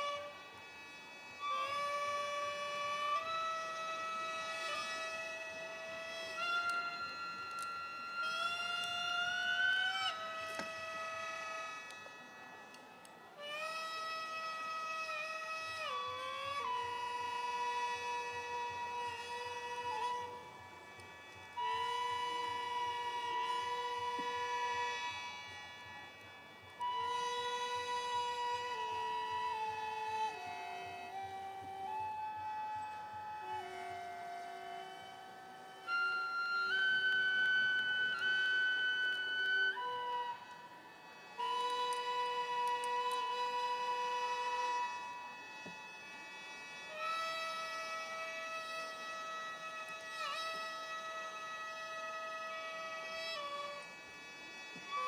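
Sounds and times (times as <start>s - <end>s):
wind instrument slow melody: 0.0s - 55.0s.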